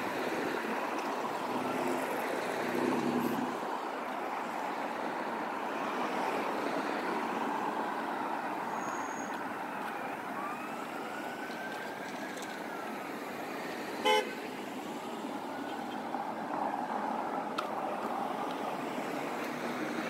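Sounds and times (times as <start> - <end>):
city street traffic: 0.0 - 20.0
car horn toot: 14.0 - 14.4.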